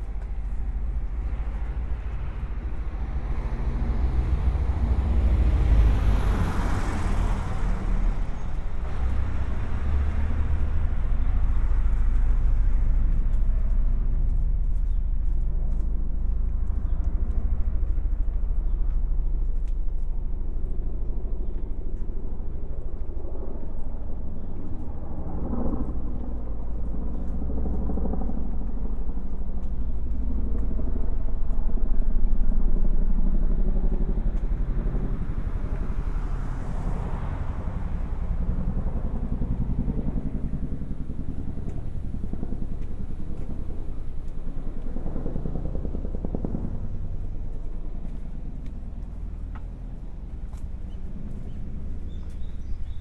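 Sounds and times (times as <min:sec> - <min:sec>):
motor vehicle passing: 0:00.0 - 0:21.7, 0:29.7 - 0:53.0
low rumble of traffic: 0:00.0 - 0:53.0.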